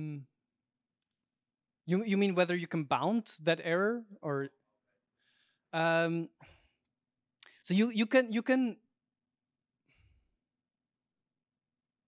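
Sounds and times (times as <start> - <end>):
breath into a microphone: 5.1 - 5.7, 6.4 - 6.9, 9.8 - 10.5.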